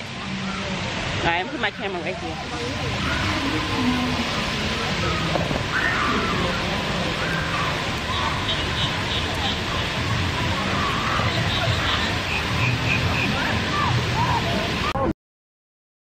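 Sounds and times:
faint voices chattering: 0:00.0 - 0:15.1
water falling down fountain wall: 0:00.0 - 0:15.1.

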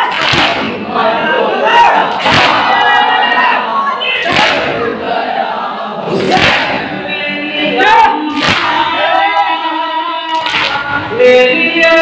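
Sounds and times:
men chanting together: 0:00.0 - 0:12.0
chest-beat slap: 0:02.2 - 0:02.7, 0:04.2 - 0:04.8, 0:06.2 - 0:06.9.

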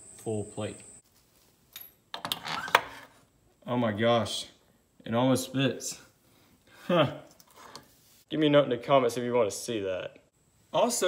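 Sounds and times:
hands rustling with parts: 0:01.0 - 0:03.3.

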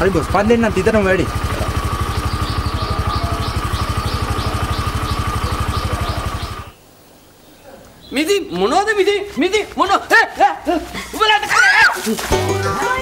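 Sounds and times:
motorcycle engine idling: 0:00.0 - 0:06.8
repeating high chirp: 0:02.0 - 0:06.8.

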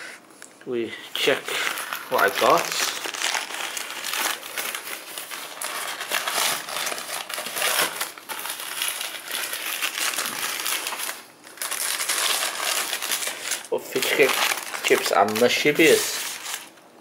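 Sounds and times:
paper crinkling and rustling: 0:01.2 - 0:16.8.

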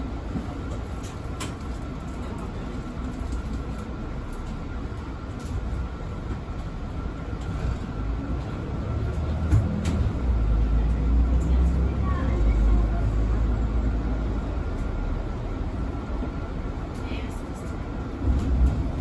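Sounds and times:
bus engine rumbling: 0:00.0 - 0:19.0.

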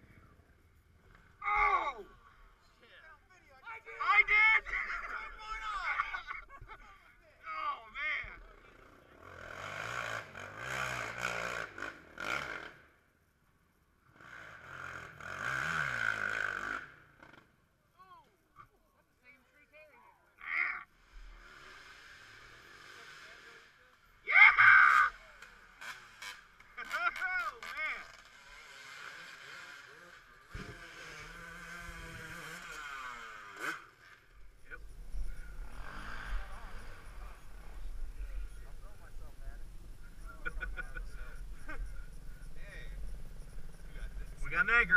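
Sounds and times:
quad engines revving: 0:08.3 - 0:12.9, 0:14.0 - 0:17.5, 0:21.0 - 0:44.9.

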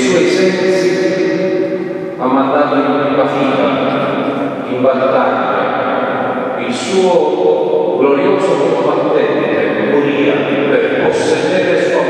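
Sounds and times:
man preaching: 0:00.0 - 0:01.3, 0:02.1 - 0:12.0.

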